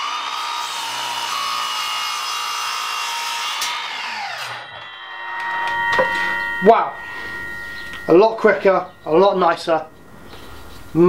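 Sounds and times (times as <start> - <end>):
mitre saw cutting wood: 0.0 - 9.4.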